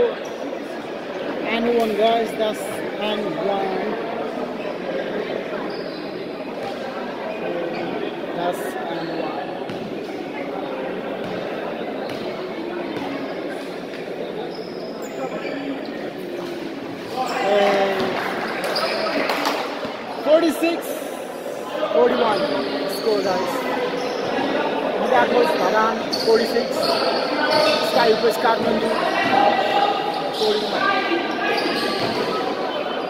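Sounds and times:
echoing chatter of people: 0.0s - 33.0s.

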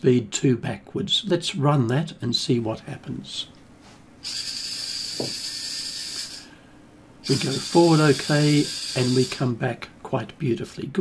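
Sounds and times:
robot motors whining: 4.2s - 6.5s, 7.2s - 9.5s.

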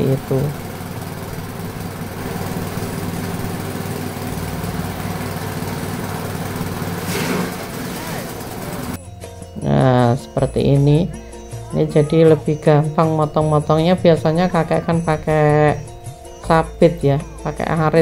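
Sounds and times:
small petrol engine running: 0.0s - 9.0s.

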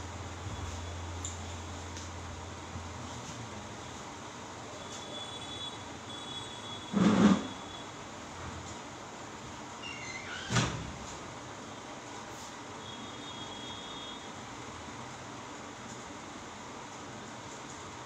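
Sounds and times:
microphone hiss: 0.0s - 8.3s.

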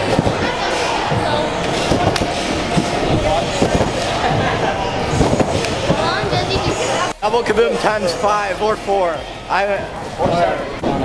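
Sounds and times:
thuds of people bouncing: 0.0s - 6.8s
many overlapping voices: 0.0s - 11.0s.

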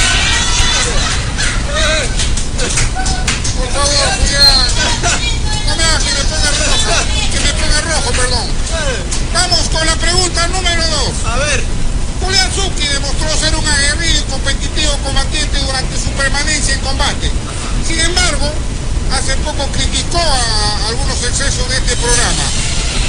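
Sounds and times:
people talking: 0.0s - 23.0s
steady low rumble: 0.0s - 23.0s.

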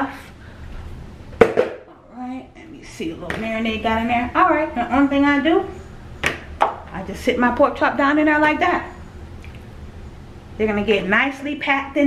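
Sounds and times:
sharp knock on plastic bowl: 1.4s - 1.8s.

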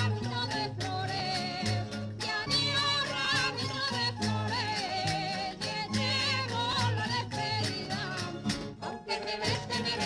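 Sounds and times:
folk dance music with singing: 0.0s - 10.0s.

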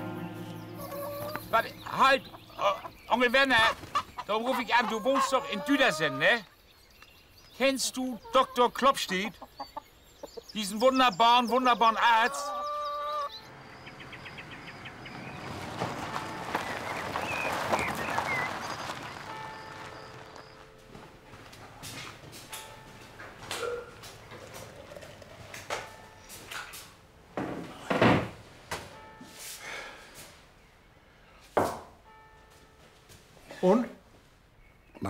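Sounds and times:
birds chirping: 0.0s - 26.8s
car engine and tyre noise: 13.4s - 24.6s.

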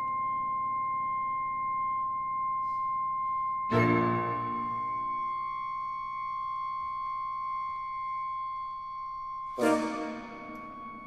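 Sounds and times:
high pure tone held steady: 0.0s - 11.0s.

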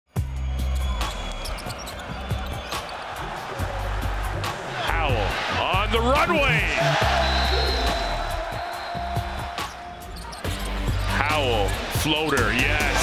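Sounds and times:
background music with bass: 0.1s - 1.5s, 3.6s - 9.7s, 10.4s - 13.0s
sneakers squeaking on hardwood: 1.2s - 3.0s, 9.7s - 11.0s.

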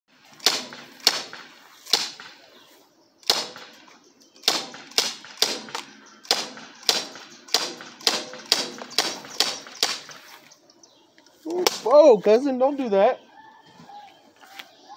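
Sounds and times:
bb pistol shots: 0.2s - 2.5s, 3.2s - 10.2s, 11.6s - 11.9s.

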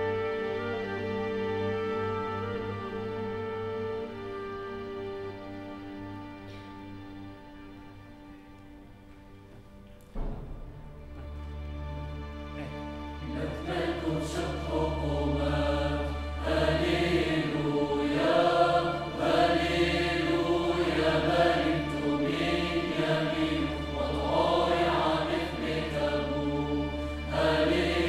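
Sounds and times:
choir singing with orchestra: 0.0s - 8.9s, 10.2s - 28.0s.

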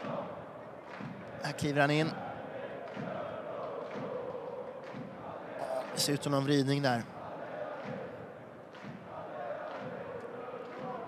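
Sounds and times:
faint crowd chanting: 0.0s - 11.0s
murmur of crowd voices: 0.0s - 11.0s.

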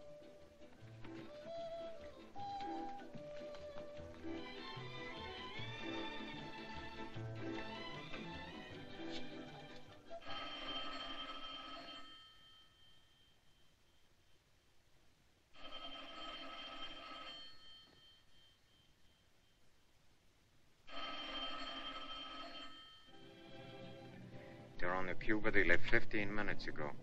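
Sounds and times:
telephone bell ringing: 4.4s - 14.1s, 15.6s - 19.3s, 20.9s - 23.9s.

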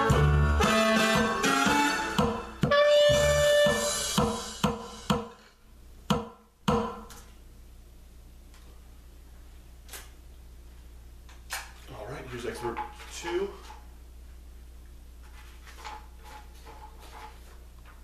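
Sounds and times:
clarinet playing: 0.0s - 4.5s
recorded accompaniment with percussion: 0.0s - 5.4s, 6.1s - 7.1s
low room hum: 0.0s - 18.0s.

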